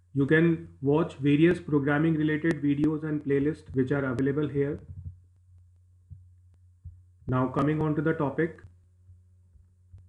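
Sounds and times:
low electrical hum: 0.0 - 10.0
faint low thumps: 2.6 - 8.0.

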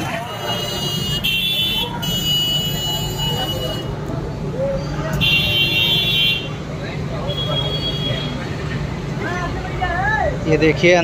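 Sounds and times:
indistinct crowd voices: 0.0 - 11.0.

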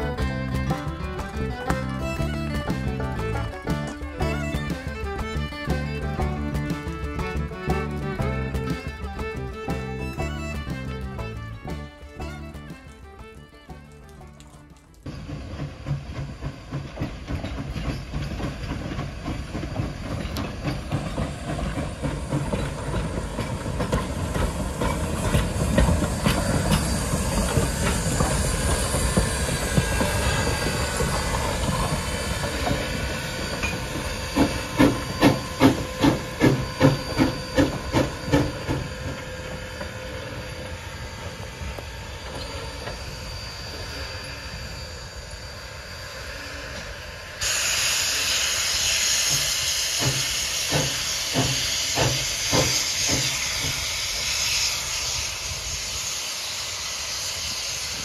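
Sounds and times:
strong regular beats: 0.0 - 14.4
steam locomotive hissing: 0.0 - 58.0.

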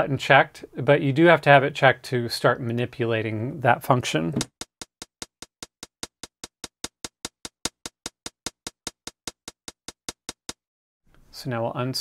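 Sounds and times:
drum machine hi-hat ticks: 4.4 - 10.6.

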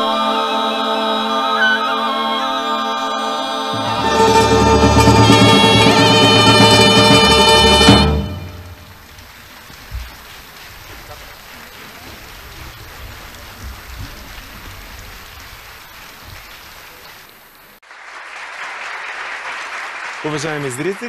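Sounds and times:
audience applause: 3.8 - 21.0.

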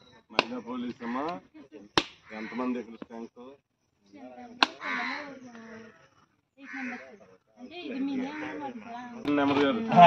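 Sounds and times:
coconut being struck: 0.3 - 1.4, 2.0 - 2.3, 4.6 - 4.8
men's voices: 9.2 - 10.0.

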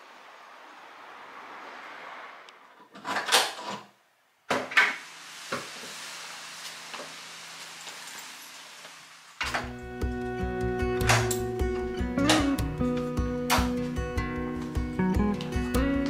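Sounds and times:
front door opening and shutting: 2.8 - 5.0, 9.4 - 9.8, 11.0 - 11.5, 12.2 - 12.6
acoustic guitar music: 9.4 - 16.0.

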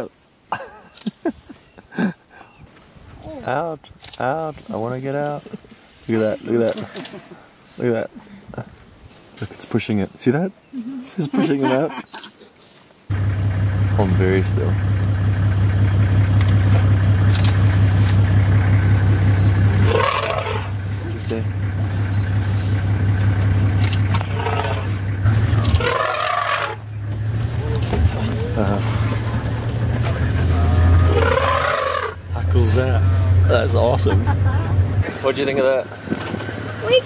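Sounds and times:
vehicle engine idling: 13.1 - 37.0.

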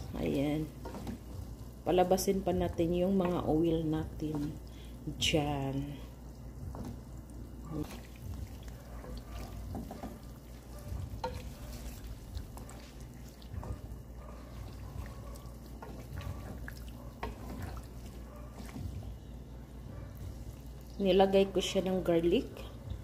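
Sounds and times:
pork frying in fat: 0.0 - 23.0
spatula scraping a pan: 9.0 - 18.8.

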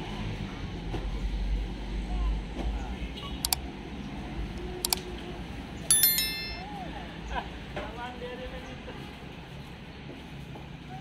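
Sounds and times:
bell notification chime: 5.9 - 6.8.

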